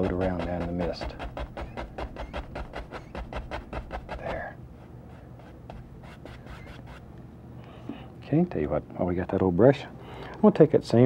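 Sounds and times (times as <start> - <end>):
brush tapping on canvas: 0.0 - 4.5.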